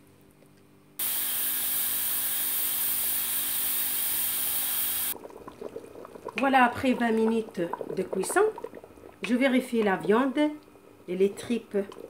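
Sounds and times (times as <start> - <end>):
pressure cooker hissing steam: 1.0 - 5.2.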